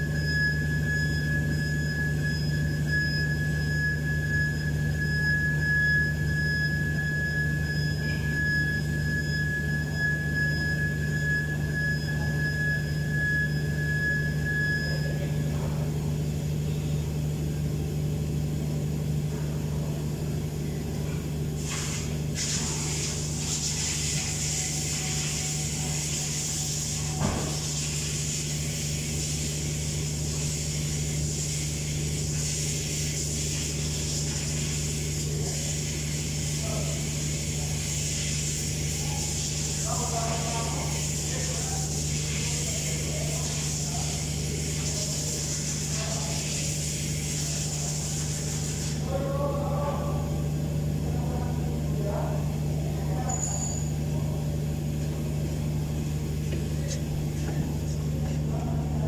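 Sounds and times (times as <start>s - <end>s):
steady mechanical hum: 0.0s - 59.0s
thin high whine: 0.0s - 59.0s
hiss: 21.6s - 49.1s.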